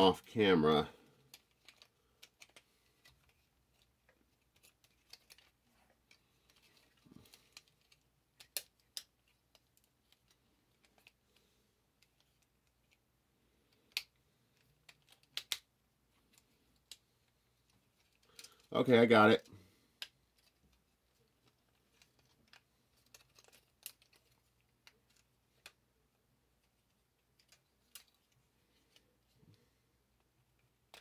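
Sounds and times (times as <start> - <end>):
plastic parts snapping: 1.2 - 5.5, 6.1 - 11.2, 13.7 - 15.7, 18.0 - 18.7, 21.4 - 25.8
plastic action figure clicks: 7.5 - 9.7, 14.9 - 15.7.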